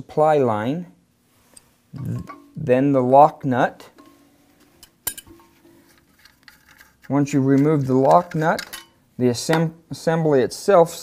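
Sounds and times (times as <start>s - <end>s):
plumbing parts clicking and clinking: 1.5s - 2.6s, 3.8s - 9.7s.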